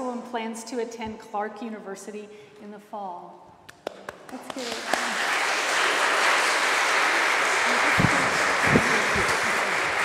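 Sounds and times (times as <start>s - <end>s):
congregation applauding: 3.8s - 10.0s.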